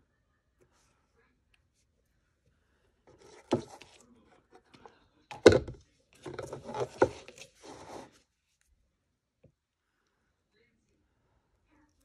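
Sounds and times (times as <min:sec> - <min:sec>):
rubbing scrapes on tabletop: 0:06.4 - 0:08.2.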